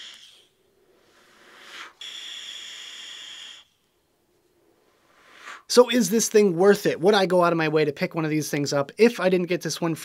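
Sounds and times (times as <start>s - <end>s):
airflow hissing through vape: 0.0s - 3.9s, 4.9s - 5.7s
short breath: 1.0s - 3.7s, 5.0s - 5.7s
faint whistle: 1.4s - 4.0s.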